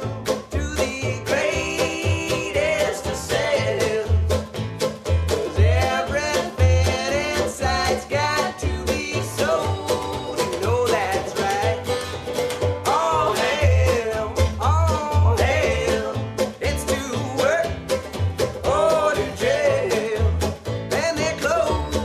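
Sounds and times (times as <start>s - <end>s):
men singing: 0.0s - 4.4s, 5.4s - 12.0s, 12.8s - 17.9s, 18.5s - 22.0s
acoustic guitar strummed: 0.0s - 22.0s
banjo picked: 0.0s - 22.0s
upright bass thumping: 0.0s - 22.0s.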